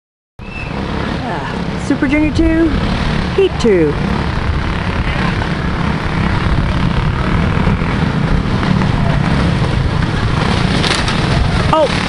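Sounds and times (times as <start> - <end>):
racing kart engines running: 0.4 - 12.0.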